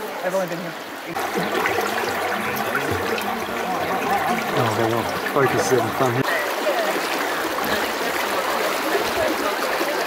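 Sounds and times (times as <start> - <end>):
river running over gravel: 0.0 - 10.0.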